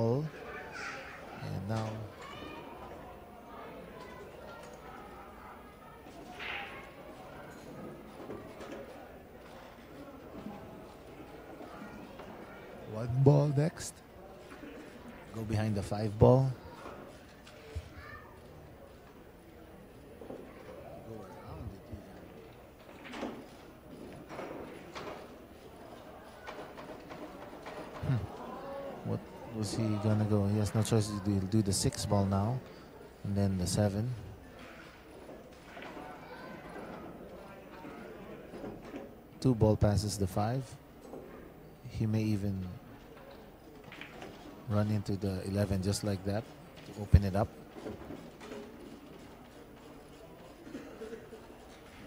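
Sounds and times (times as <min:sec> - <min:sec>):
faint murmur of voices: 0:00.0 - 0:52.0
pool balls clicking and rolling: 0:00.0 - 0:52.0
billiard balls clicking: 0:22.1 - 0:29.3, 0:42.8 - 0:45.4, 0:46.1 - 0:52.0.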